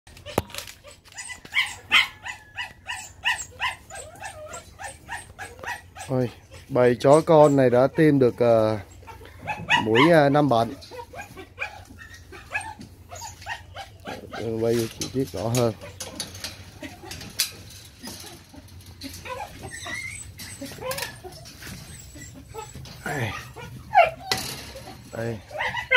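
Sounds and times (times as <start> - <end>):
puppies yapping: 0.1 - 25.9.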